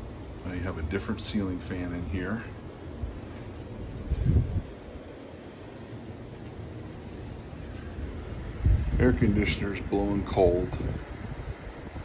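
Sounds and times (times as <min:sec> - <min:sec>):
air conditioning vent blowing: 0:00.0 - 0:12.0
ceiling fan running: 0:00.0 - 0:12.0.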